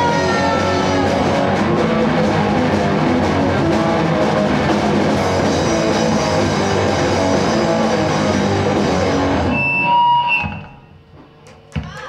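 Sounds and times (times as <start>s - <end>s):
rock band final chord: 0.0s - 10.4s.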